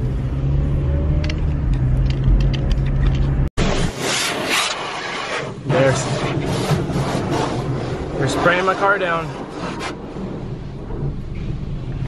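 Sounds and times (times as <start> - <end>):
car engine and road hum: 0.0 - 12.0
water spray hitting car: 3.6 - 10.0.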